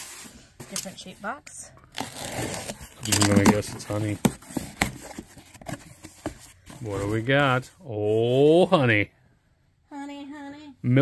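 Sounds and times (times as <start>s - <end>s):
cardboard crackles: 2.0s - 7.4s.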